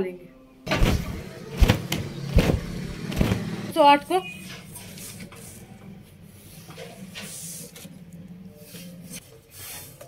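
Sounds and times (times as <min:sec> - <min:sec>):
bedsheet snapping when shaken: 0:00.7 - 0:03.7.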